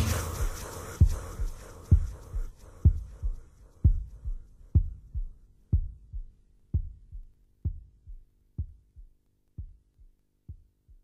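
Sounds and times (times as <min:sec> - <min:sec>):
death metal music: 0:00.0 - 0:01.3
heartbeat thumps: 0:00.0 - 0:11.0.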